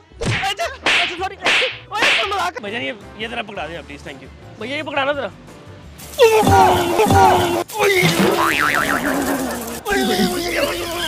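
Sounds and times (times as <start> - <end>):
whip-like swishes and slaps: 0.2 - 2.4
men shouting and grunting: 6.1 - 11.0.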